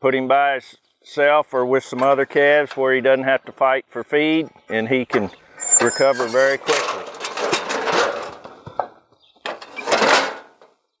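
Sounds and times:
metal chute rattling and clanking: 0:05.5 - 0:08.9, 0:09.5 - 0:10.6.

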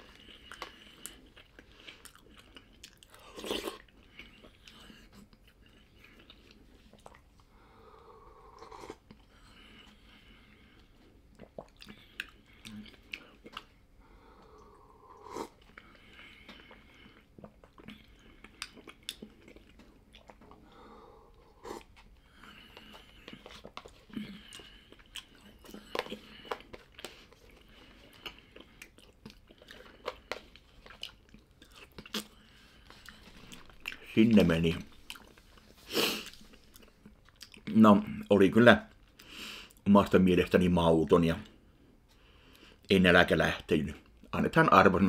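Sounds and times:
person chewing: 0:00.0 - 0:37.7.

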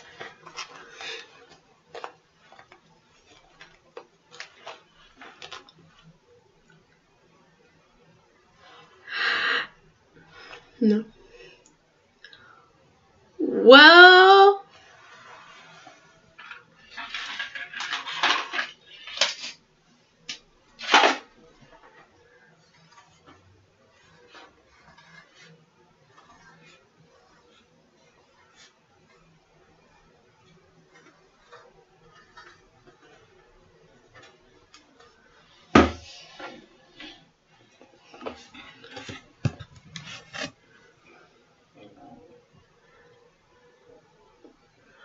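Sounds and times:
objects rustling and scraping: 0:00.0 - 0:07.2, 0:08.0 - 0:11.6, 0:14.7 - 0:43.1.

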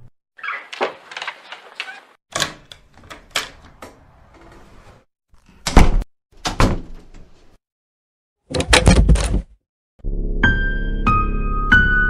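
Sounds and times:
rattling clatter of bars and latch: 0:02.3 - 0:04.6.

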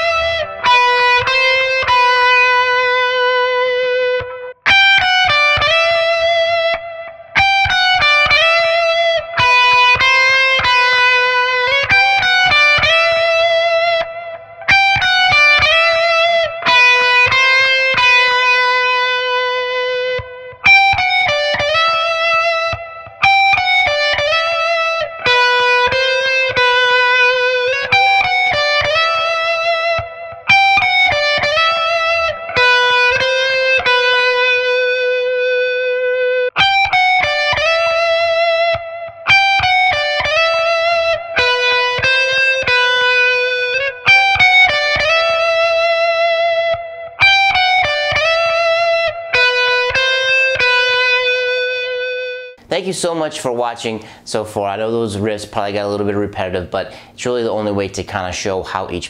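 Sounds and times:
electric guitar lead riff: 0:00.0 - 0:59.0.

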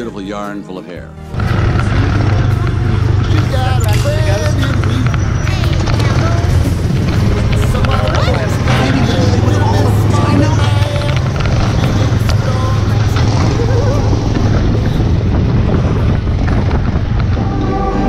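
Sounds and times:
road and wind noise: 0:00.0 - 0:18.0.

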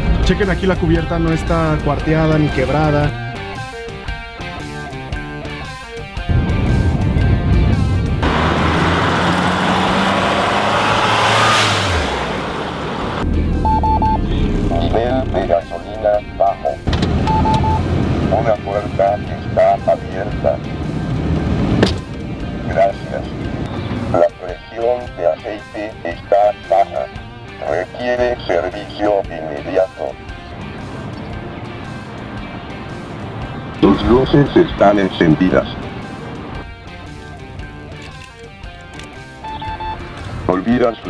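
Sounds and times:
loud low rumble and rush: 0:00.0 - 0:03.1, 0:06.3 - 0:24.5, 0:30.0 - 0:37.3
guitar music: 0:00.0 - 0:10.8, 0:13.2 - 0:41.0
car warning chime: 0:13.5 - 0:14.9, 0:17.2 - 0:17.9, 0:39.4 - 0:40.1.

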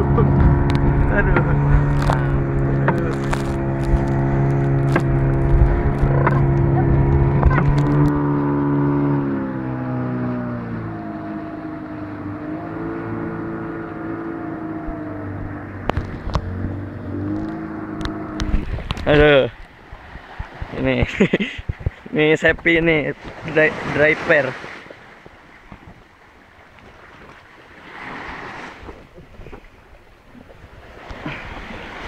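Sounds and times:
outboard motor running: 0:00.0 - 0:32.0
water washing past hull: 0:00.0 - 0:32.0.

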